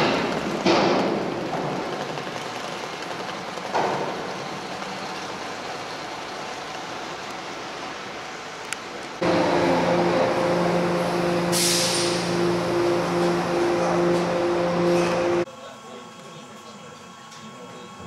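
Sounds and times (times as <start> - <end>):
open-air harbour noise: 0.0 - 15.5
machinery hum of low tones: 9.2 - 16.1.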